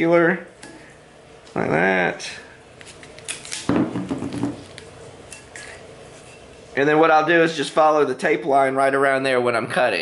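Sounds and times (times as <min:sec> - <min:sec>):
masking tape tearing: 0:02.8 - 0:03.8.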